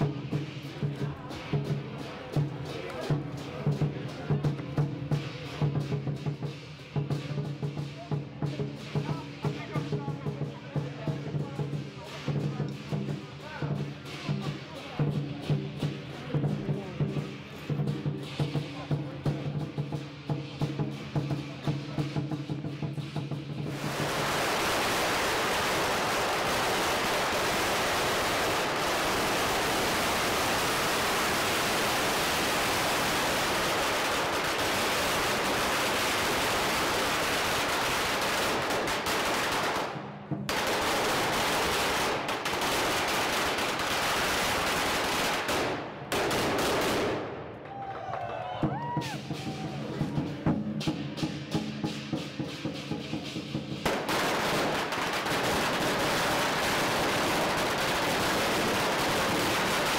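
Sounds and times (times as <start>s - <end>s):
lion dance drumming: 0.0s - 43.9s, 47.7s - 59.9s
firecrackers crackling: 0.0s - 59.9s.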